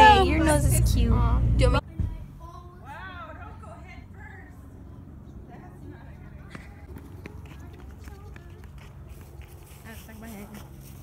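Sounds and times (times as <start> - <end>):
child running on concrete: 6.4 - 11.0.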